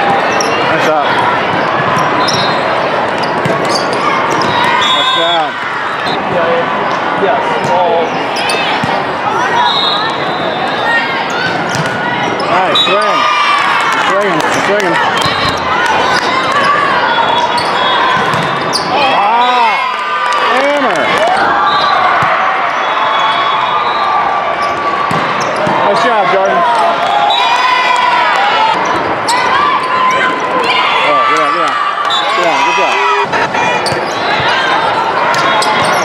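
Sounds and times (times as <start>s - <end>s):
players and spectators chattering: 0.0s - 36.0s
sneakers squeaking on floor: 0.1s - 0.8s, 1.5s - 6.3s, 7.6s - 9.0s, 9.7s - 13.2s, 15.2s - 19.7s, 24.6s - 26.0s, 33.2s - 34.6s, 35.4s - 36.0s
ball hits: 18.2s - 18.6s, 25.1s - 25.8s.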